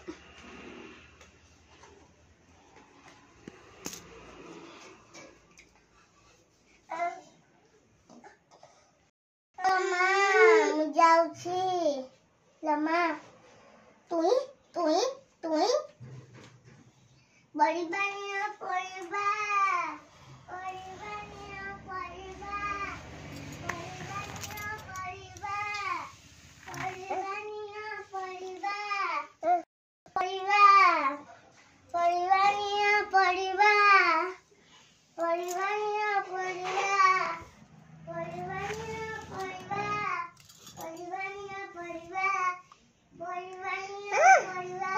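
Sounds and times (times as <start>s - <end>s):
child singing unaccompanied: 17.6s - 26.1s, 30.2s - 31.3s, 35.2s - 37.4s, 38.0s - 44.9s.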